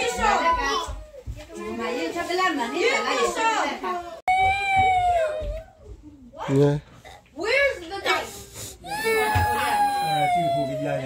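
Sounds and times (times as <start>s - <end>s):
adults talking: 0.0s - 6.4s, 7.3s - 11.0s
children chattering and calling out: 0.0s - 6.4s, 7.4s - 11.0s.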